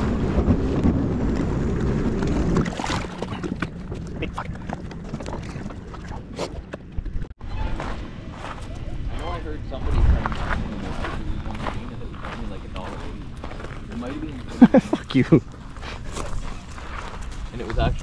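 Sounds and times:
footsteps crunching on gravel: 7.7 - 14.6, 15.4 - 18.0.

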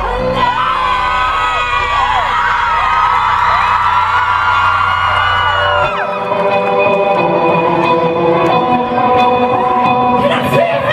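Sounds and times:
crowd cheering and whooping: 0.0 - 8.2.

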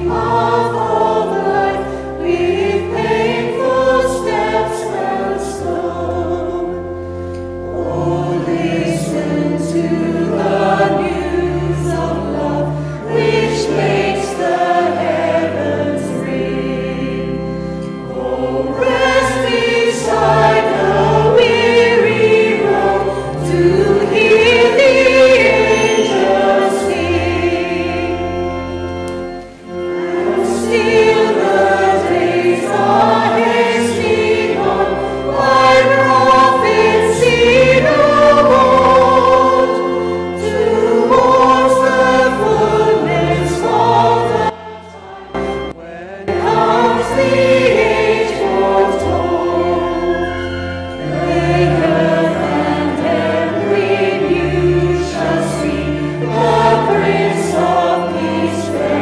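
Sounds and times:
choir singing a carol: 0.0 - 59.0.

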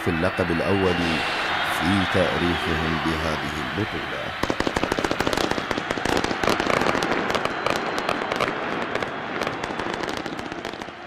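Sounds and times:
fireworks and firecrackers cracking: 4.4 - 11.0.

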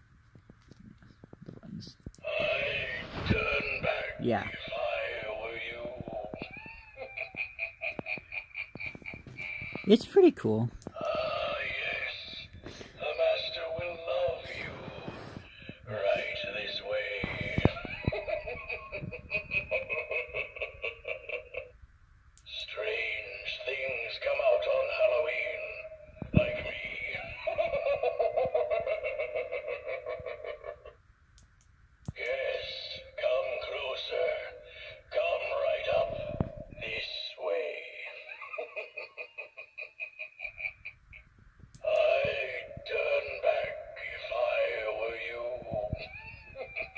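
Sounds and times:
spooky recorded voice: 1.5 - 7.4, 9.1 - 21.6, 22.5 - 28.8, 32.2 - 39.0, 41.8 - 46.9
recorded laughter: 5.2 - 9.8, 16.0 - 21.8, 26.4 - 31.0, 34.8 - 42.5, 44.2 - 46.9
electronic spooky voice talking: 9.5 - 12.4, 41.8 - 46.2.

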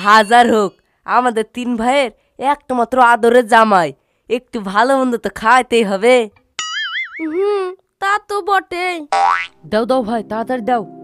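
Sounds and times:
cartoon boing tone: 6.6 - 7.4, 9.1 - 9.6.

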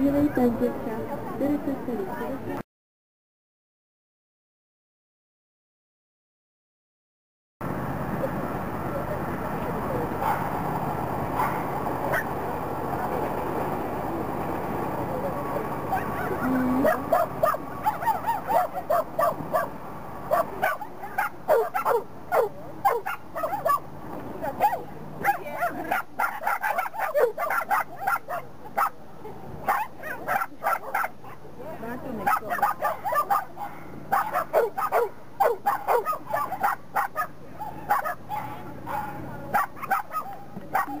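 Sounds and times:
dog barking in sharp yips: 32.3 - 37.3, 37.9 - 41.0.

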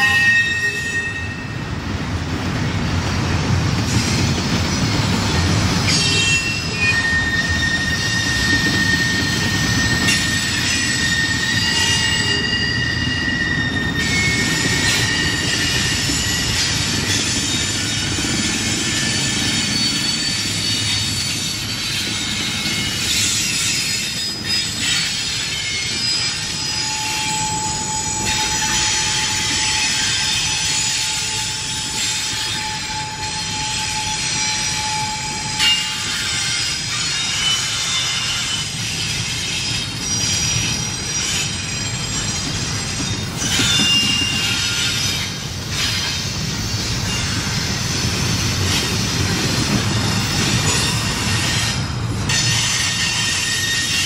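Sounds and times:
high flange squeal: 0.0 - 1.8, 5.8 - 48.1, 49.7 - 54.0
train wheels rumbling on rails: 0.0 - 54.0.

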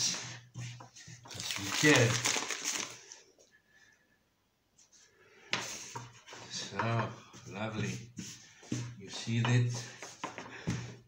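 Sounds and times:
rolling pin scraping dough: 0.0 - 2.0, 5.5 - 10.9.

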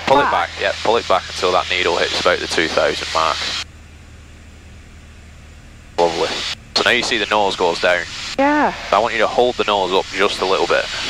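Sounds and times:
light aircraft engine drone: 0.0 - 11.0.

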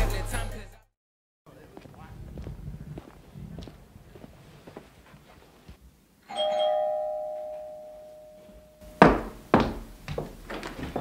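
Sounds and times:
doorbell chime: 6.3 - 9.0.

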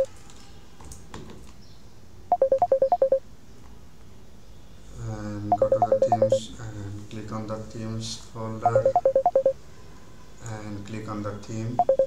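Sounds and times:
quick electronic beeps: 2.3 - 3.2, 5.5 - 6.4, 8.6 - 9.6, 11.8 - 12.0.

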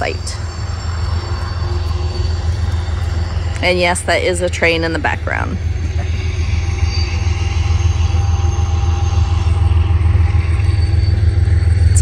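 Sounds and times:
train rumbling on rails: 0.0 - 12.0.

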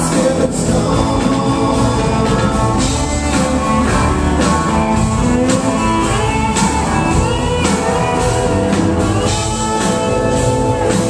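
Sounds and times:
country rock band playing: 0.0 - 11.0
drums keeping the beat: 0.0 - 11.0
guitars: 0.0 - 11.0.

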